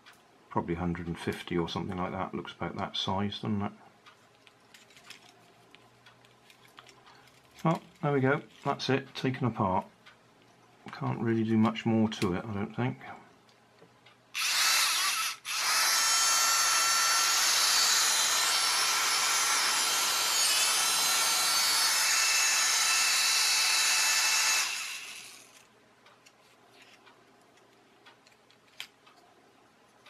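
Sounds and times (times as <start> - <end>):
toy fan motor whining: 14.3 - 25.7.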